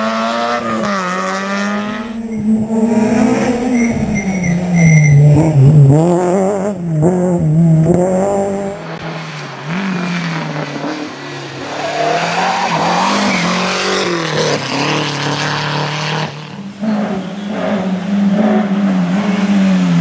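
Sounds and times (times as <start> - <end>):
rally car engines revving: 0.0 - 20.0.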